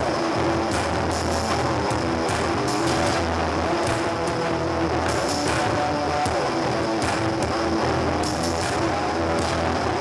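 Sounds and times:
electric guitar: 0:00.0 - 0:10.0
steady bass line: 0:00.0 - 0:10.0.

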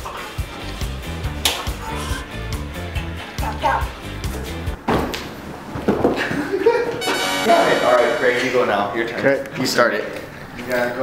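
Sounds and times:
background music with steady beat: 0:00.0 - 0:04.8, 0:07.0 - 0:09.0.

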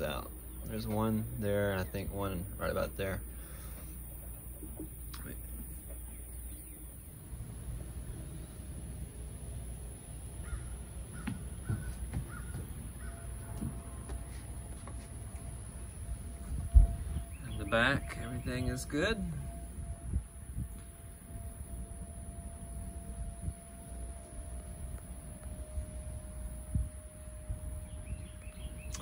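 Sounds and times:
faint bird calls: 0:10.4 - 0:14.5.

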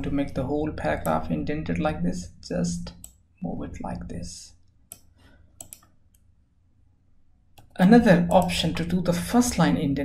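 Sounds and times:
faint computer mouse clicks: 0:04.6 - 0:06.3.

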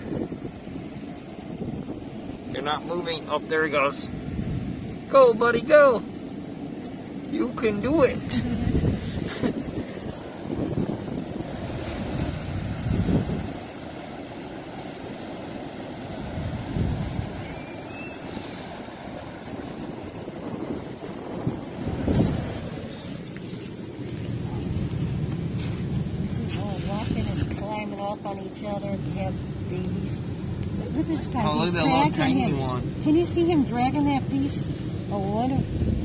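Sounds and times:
ocean surf washing: 0:00.0 - 0:36.0
wind rumbling on microphone: 0:00.0 - 0:36.0.

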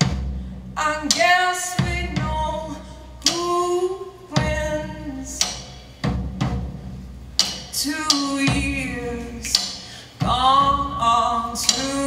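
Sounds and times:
drum kit: 0:00.0 - 0:12.0
heavy drum and cymbal hits: 0:00.0 - 0:12.0.

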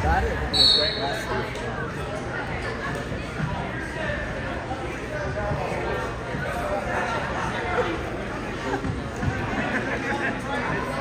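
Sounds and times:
spectators chattering: 0:00.0 - 0:11.0
referee's whistle blast: 0:00.5 - 0:01.3.

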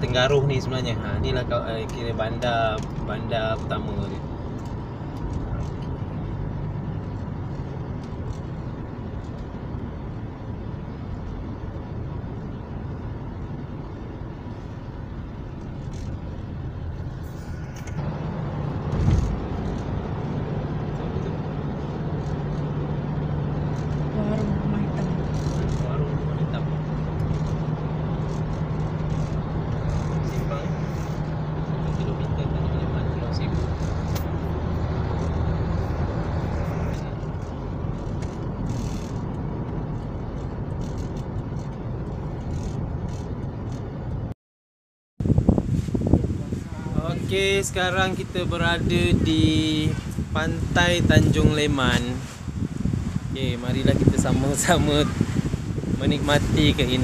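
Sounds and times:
tyre noise on wet road: 0:00.0 - 0:44.1
low engine hum: 0:00.0 - 0:44.4, 0:45.2 - 0:57.0.

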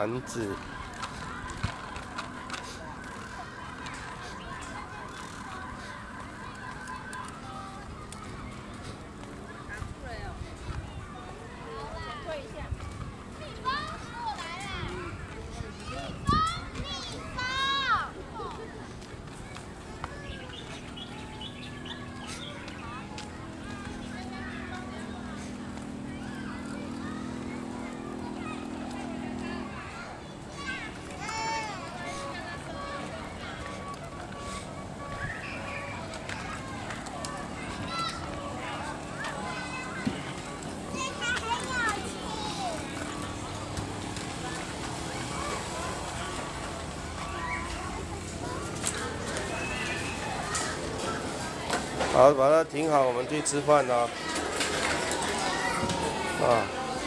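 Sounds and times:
faint distant voices: 0:00.0 - 0:57.0
outdoor background hum: 0:00.0 - 0:57.0.

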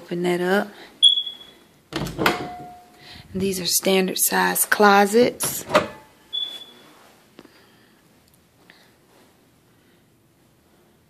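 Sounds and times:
closet doors swinging open: 0:01.9 - 0:02.8, 0:05.4 - 0:06.5.

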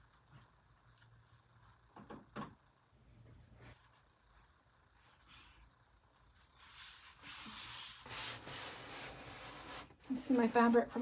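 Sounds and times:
rubbing and rustling handling noise: 0:03.0 - 0:10.6.

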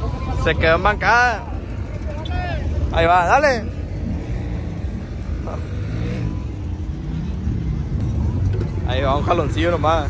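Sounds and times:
truck engine revving: 0:02.7 - 0:09.9.

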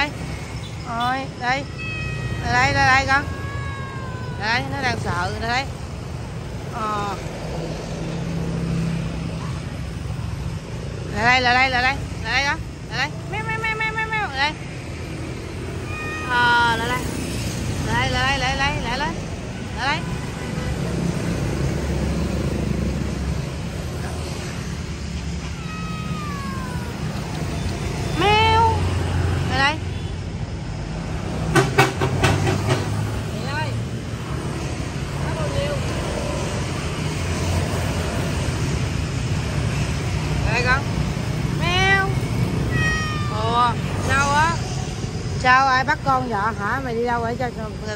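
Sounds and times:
low traffic rumble: 0:00.0 - 0:47.9
cat meowing: 0:01.4 - 0:05.8, 0:15.6 - 0:21.0, 0:25.2 - 0:28.9, 0:41.8 - 0:44.6.

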